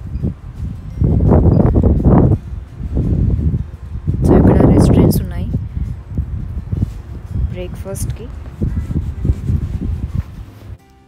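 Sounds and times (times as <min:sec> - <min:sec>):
wind gusts on microphone: 0:00.0 - 0:10.8.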